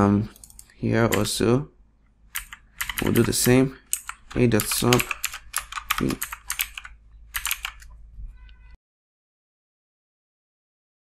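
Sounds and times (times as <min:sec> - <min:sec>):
computer keyboard typing: 0:00.3 - 0:01.4, 0:02.3 - 0:08.0.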